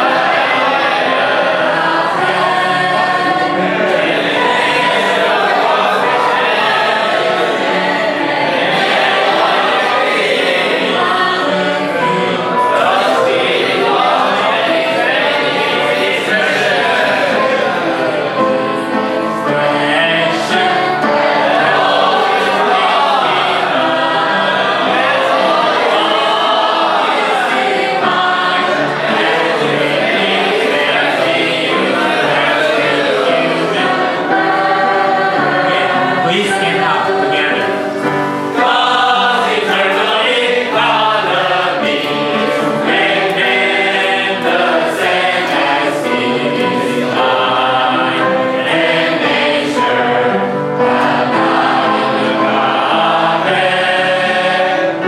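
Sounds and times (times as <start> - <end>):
group singing a hymn: 0.0 - 55.0
man singing through a microphone: 35.6 - 37.8.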